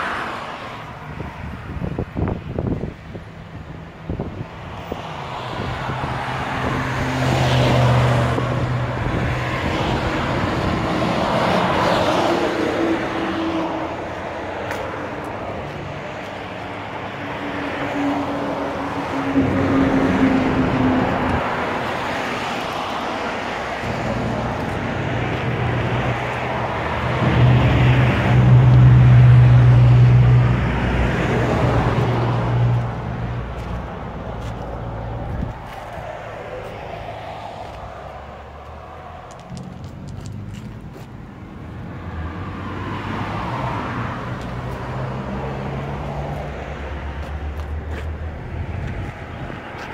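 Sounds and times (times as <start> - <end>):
traffic going by: 0.0 - 49.9.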